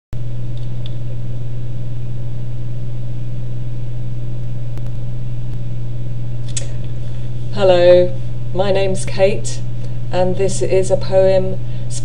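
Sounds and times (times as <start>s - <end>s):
steady low hum: 0.2s - 12.0s.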